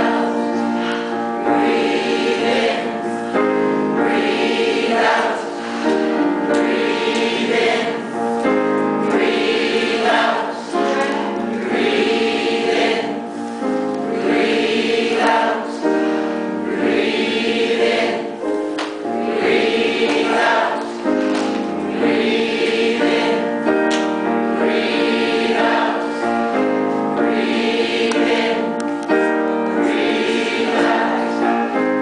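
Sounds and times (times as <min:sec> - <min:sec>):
mixed choir singing in harmony: 0:00.0 - 0:32.0.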